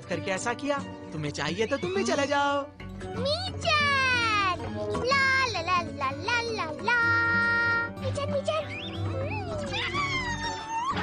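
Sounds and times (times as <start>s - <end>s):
background music: 0.0s - 11.0s
cartoon cat meowing: 9.3s - 11.0s.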